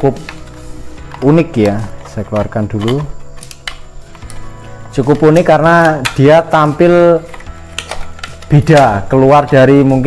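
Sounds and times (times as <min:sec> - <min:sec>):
soft background music: 0:00.0 - 0:10.0
packaging clicks and rustles: 0:00.2 - 0:10.0.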